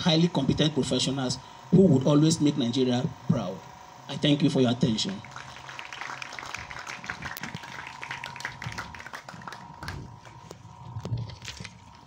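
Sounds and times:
audience applauding: 5.2s - 10.4s.

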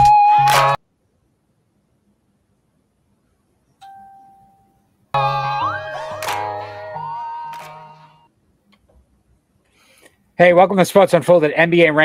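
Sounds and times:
bell-like chime: 3.8s - 4.8s.

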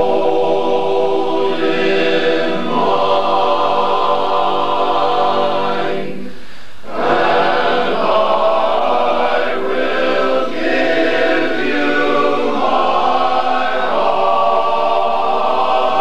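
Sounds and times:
a cappella chorus singing: 0.0s - 16.0s.

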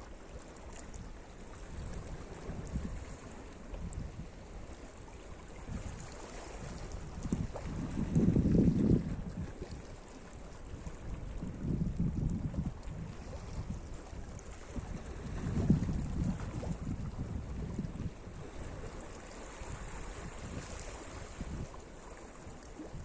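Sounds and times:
small waves washing over rocks: 0.5s - 23.0s
wind buffeting microphone: 1.0s - 21.8s.

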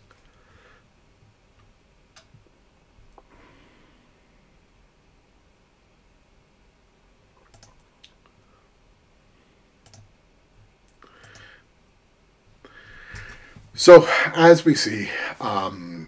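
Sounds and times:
faint computer mouse clicks: 7.4s - 8.2s, 9.8s - 10.1s, 10.9s - 11.5s.

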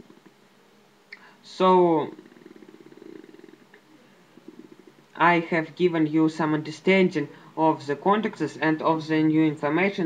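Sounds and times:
man's creaky-voiced uh: 0.0s - 0.4s, 1.1s - 10.0s.

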